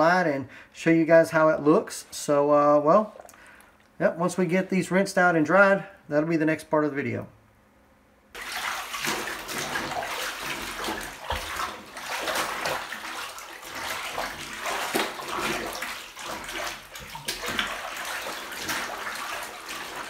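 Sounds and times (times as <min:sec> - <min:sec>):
water sloshing in a bathtub: 0:02.9 - 0:04.5, 0:08.3 - 0:20.0.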